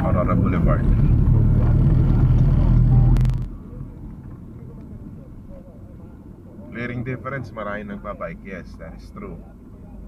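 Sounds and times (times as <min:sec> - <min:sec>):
car cabin rumble: 0:00.0 - 0:06.1.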